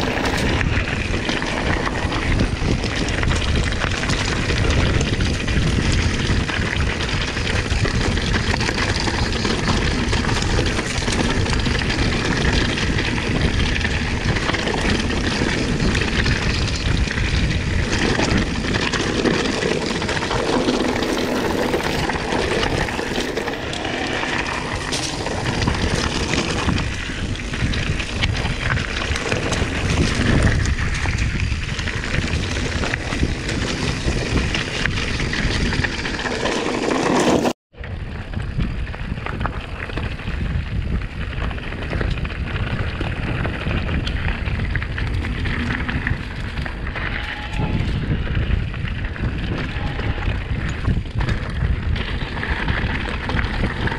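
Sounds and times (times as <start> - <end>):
tyres crunching over gravel: 0.0 - 37.6
bike knocking and rattling: 0.0 - 53.9.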